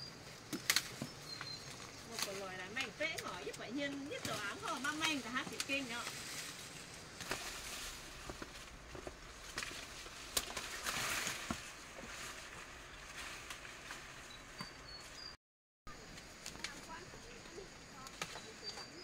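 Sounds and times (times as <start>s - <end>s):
dry corn leaves rustling: 0.0s - 15.3s, 16.0s - 19.0s
stalks snapping: 0.5s - 6.5s, 7.2s - 11.7s, 18.0s - 18.5s.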